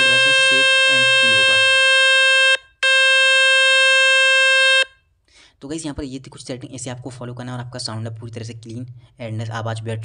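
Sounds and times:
loud buzzy tone: 0.0 - 4.9.

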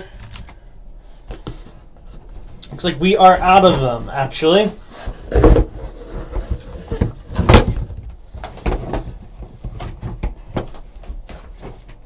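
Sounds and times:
cardboard boxes knocking and scraping: 4.8 - 12.0.

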